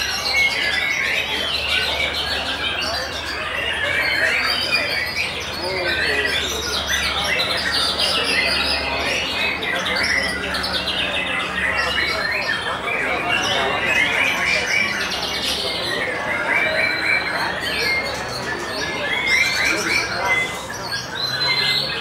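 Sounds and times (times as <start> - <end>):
birds singing: 0.0 - 22.0.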